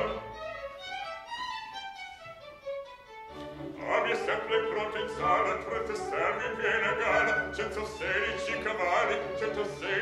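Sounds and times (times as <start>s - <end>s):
orchestral violins playing melody: 0.0s - 10.0s.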